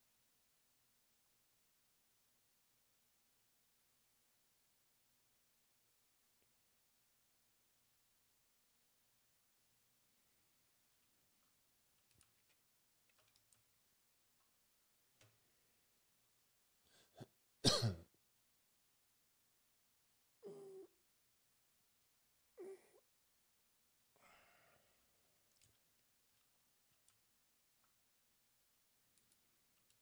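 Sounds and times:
faint steady hum and hiss: 0:00.0 - 0:30.0
faint clicks: 0:10.9 - 0:13.7, 0:25.4 - 0:28.0, 0:29.1 - 0:30.0
person clearing throat: 0:17.1 - 0:18.1.

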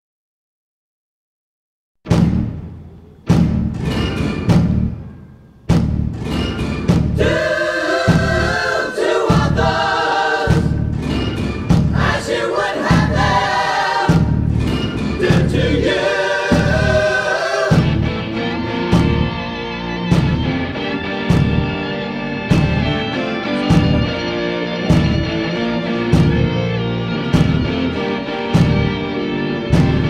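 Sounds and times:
heavy drum hits: 0:02.1 - 0:09.9, 0:10.5 - 0:19.4, 0:20.1 - 0:21.8, 0:22.5 - 0:29.1, 0:29.7 - 0:30.0
pounding low drum beat: 0:02.1 - 0:30.0
choir singing: 0:07.1 - 0:30.0.

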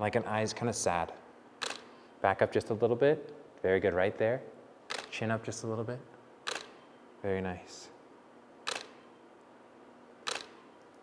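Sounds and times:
camera shutter click: 0:01.6 - 0:01.9, 0:04.9 - 0:05.2, 0:06.4 - 0:06.8, 0:08.6 - 0:09.2, 0:10.2 - 0:10.6.

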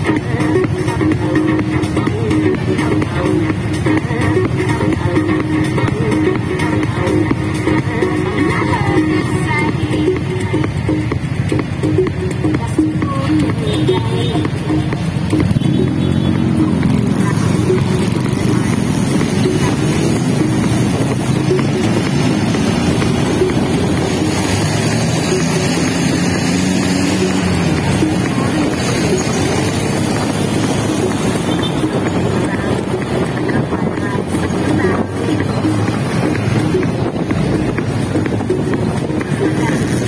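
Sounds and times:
motorcycle engine accelerating: 0:14.2 - 0:40.0.

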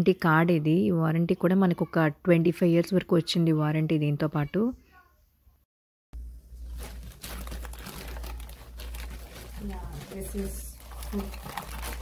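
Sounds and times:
plastic wrapping crinkling: 0:06.2 - 0:12.0.

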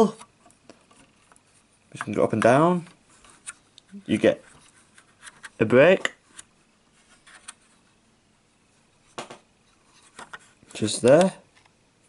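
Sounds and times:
fingers handling plastic parts: 0:00.1 - 0:07.8, 0:09.9 - 0:11.7.

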